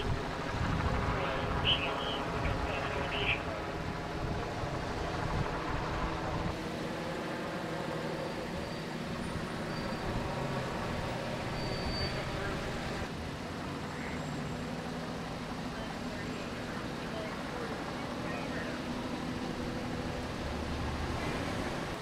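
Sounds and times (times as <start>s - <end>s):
faint traffic: 0.0s - 22.0s
vehicle engine humming: 0.0s - 22.0s.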